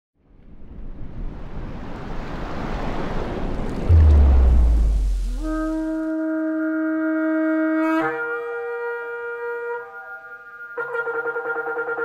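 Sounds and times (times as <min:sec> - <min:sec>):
deep boom with low rumble: 0:03.9 - 0:06.0
rushing noise swell: 0:03.9 - 0:06.1.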